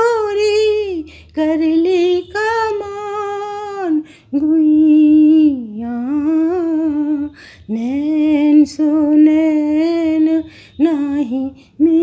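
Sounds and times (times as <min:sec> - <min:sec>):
breath: 0:01.0 - 0:01.3, 0:04.0 - 0:04.3, 0:07.3 - 0:07.7, 0:10.5 - 0:10.8, 0:11.5 - 0:11.8.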